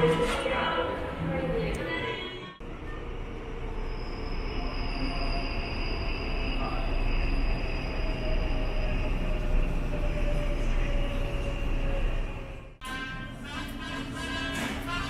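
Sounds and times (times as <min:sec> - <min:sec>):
subway train rumbling: 0:00.0 - 0:15.0.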